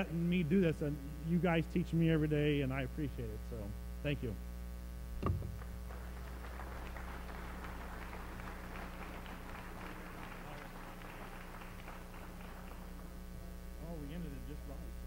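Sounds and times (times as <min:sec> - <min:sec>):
electrical mains hum: 0:00.0 - 0:15.0
audience applauding: 0:05.5 - 0:13.2.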